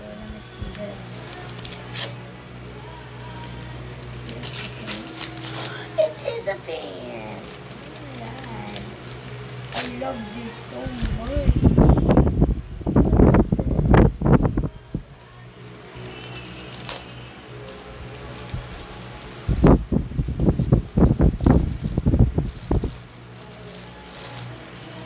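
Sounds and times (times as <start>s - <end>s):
plastic wrapping crinkling: 0.0s - 25.0s
steady low hum: 0.0s - 25.0s.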